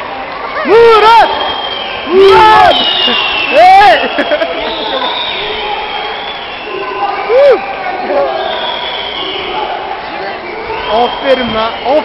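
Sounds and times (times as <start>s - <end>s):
indistinct voices talking: 0.6s - 12.0s.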